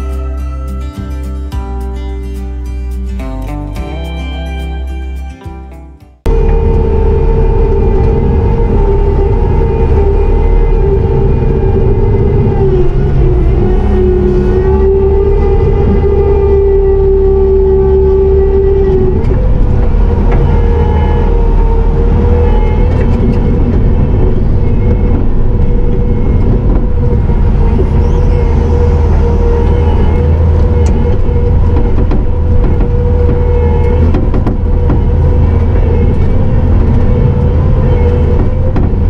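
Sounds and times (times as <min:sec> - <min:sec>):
diesel engine and hydraulics whine: 0:06.2 - 0:39.0.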